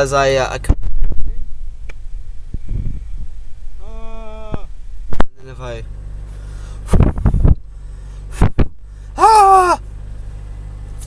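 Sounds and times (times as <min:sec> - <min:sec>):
low rumble inside car: 0:00.0 - 0:11.0
finger rubbing microphone: 0:02.5 - 0:03.3.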